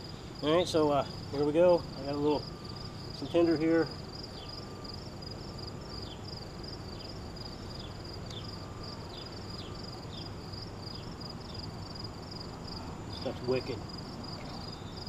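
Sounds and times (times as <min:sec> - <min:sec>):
insects trilling: 0:00.0 - 0:15.0
low steady hum: 0:00.0 - 0:15.0.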